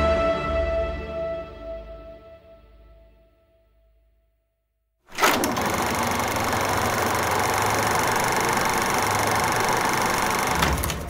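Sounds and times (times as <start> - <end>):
mechanical whirring: 5.1 - 11.0.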